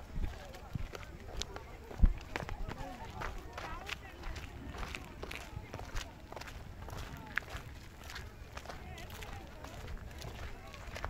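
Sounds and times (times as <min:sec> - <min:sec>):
people talking outdoors: 0:00.0 - 0:11.0.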